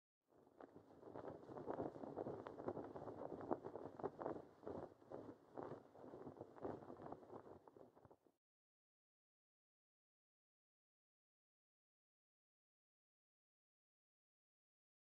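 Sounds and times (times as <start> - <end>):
flag flapping in the wind: 0.4 - 8.3.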